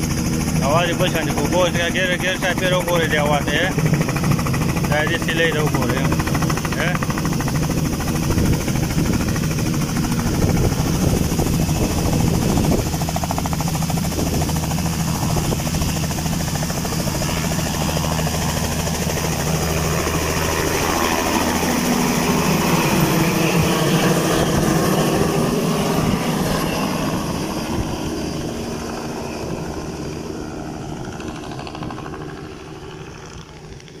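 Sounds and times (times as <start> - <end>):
helicopter rotor and engine: 0.0 - 34.0.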